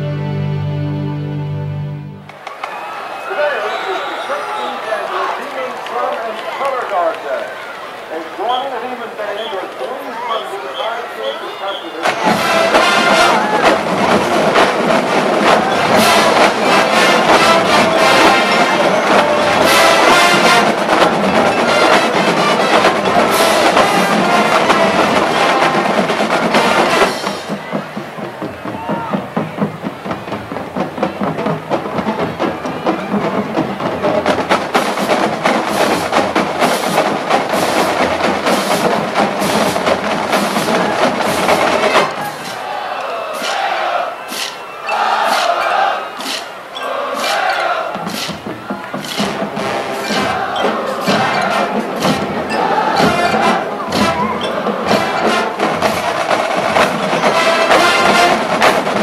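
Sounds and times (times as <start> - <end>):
marching band playing: 0.0 - 59.0
drums playing rhythmic strokes: 12.0 - 59.0.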